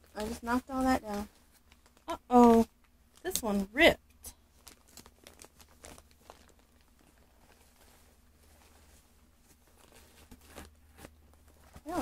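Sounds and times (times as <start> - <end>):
plastic packaging crinkling: 0.0 - 3.6, 4.3 - 12.0.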